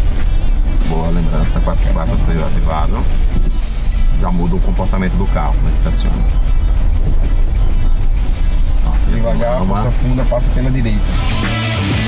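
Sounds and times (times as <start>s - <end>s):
background music: 0.0s - 12.0s
car engine and tyres rumbling: 0.0s - 12.0s.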